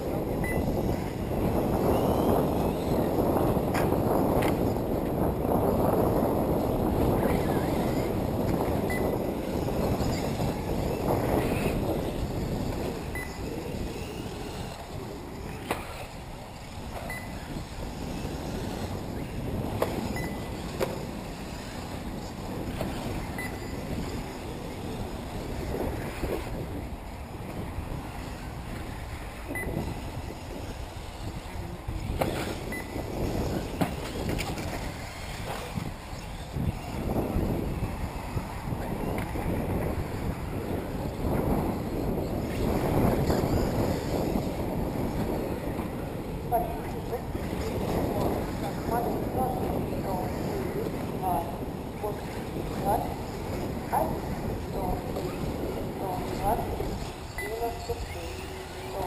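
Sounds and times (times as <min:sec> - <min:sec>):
electric rc cars racing: 0:00.0 - 0:59.0
wind rumbling on microphone: 0:00.0 - 0:59.0
faint short high beeps: 0:17.1 - 0:17.4, 0:57.3 - 0:57.8.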